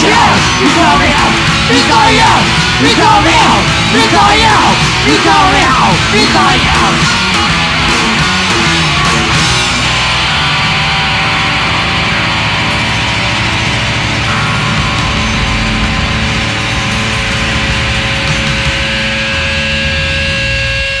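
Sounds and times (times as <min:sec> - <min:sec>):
rock band playing: 0:00.0 - 0:21.0
steady held tones: 0:00.0 - 0:21.0.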